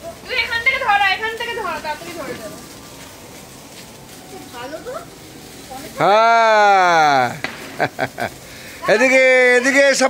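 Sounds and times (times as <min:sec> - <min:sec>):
sharp crackles: 0:00.0 - 0:10.0.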